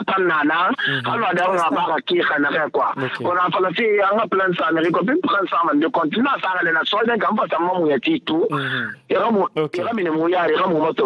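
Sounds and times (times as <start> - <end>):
person talking over telephone: 0.0 - 11.0.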